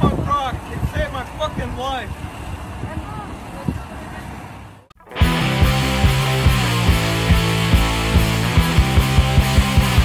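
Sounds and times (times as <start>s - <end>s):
outdoor background noise: 0.0s - 5.2s.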